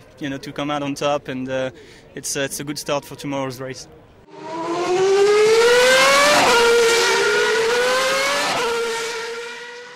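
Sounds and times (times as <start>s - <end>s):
racing car engine accelerating: 4.3s - 9.9s.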